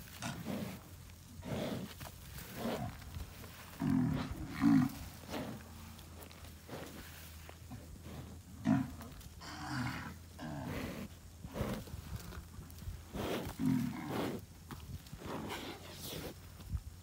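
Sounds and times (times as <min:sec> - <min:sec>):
dirt scraping: 0:00.0 - 0:16.8
bull grunting: 0:00.1 - 0:14.5, 0:15.1 - 0:16.4.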